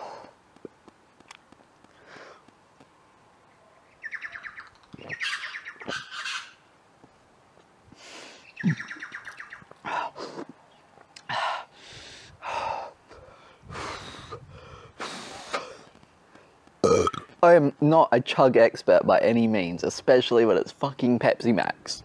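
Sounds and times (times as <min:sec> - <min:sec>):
man breathing hard and gasping: 0:00.0 - 0:00.4, 0:01.9 - 0:02.5, 0:11.2 - 0:16.5
bird twittering: 0:03.5 - 0:06.7, 0:08.4 - 0:09.8.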